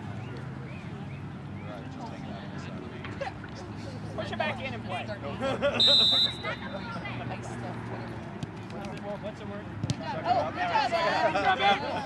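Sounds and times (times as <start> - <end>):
spectators' voices: 0.2 - 12.0
referee's whistle blast: 5.8 - 6.8.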